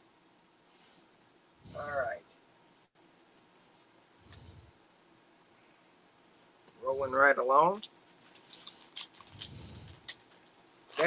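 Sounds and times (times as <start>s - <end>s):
handling trading cards and foil pack: 7.6s - 11.0s.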